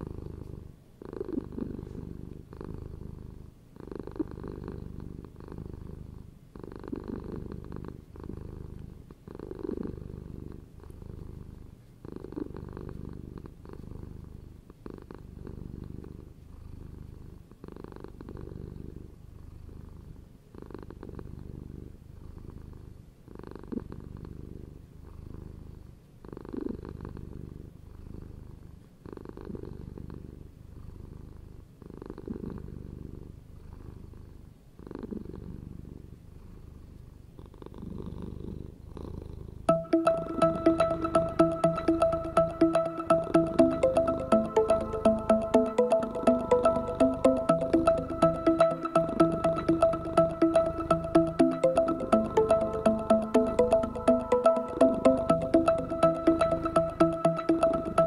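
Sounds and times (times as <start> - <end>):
cat purring: 0.0 - 39.7.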